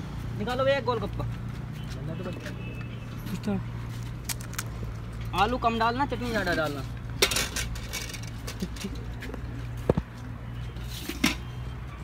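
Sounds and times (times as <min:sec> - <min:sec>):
steel utensils clinking: 0:07.2 - 0:09.0.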